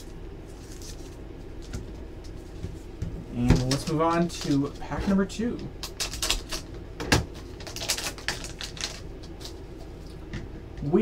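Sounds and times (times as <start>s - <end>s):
foil wrapper crinkling and tearing: 0.0s - 2.6s, 3.6s - 5.2s, 5.8s - 10.2s
cards being handled: 0.0s - 6.7s, 7.3s - 10.2s.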